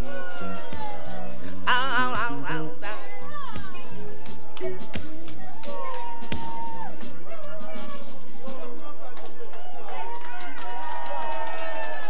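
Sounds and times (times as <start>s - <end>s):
voices singing long notes: 0.0s - 4.9s.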